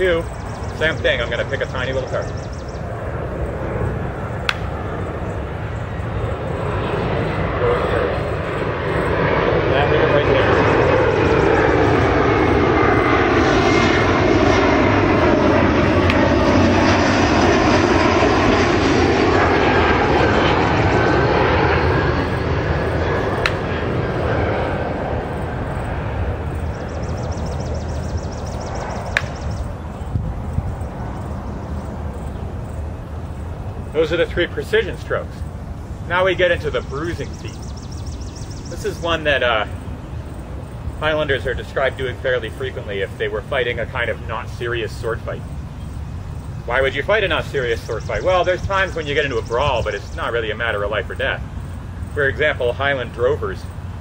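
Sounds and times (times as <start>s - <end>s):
aircraft flying overhead: 0.0s - 54.0s.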